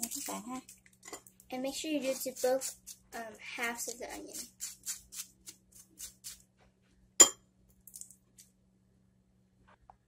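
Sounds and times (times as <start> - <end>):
knife scraping onion skin: 2.0 - 3.0, 3.9 - 6.4
knife clinking on counter: 7.2 - 7.4.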